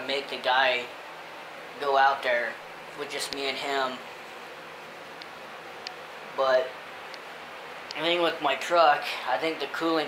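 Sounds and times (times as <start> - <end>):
indoor room hiss: 0.0 - 10.0.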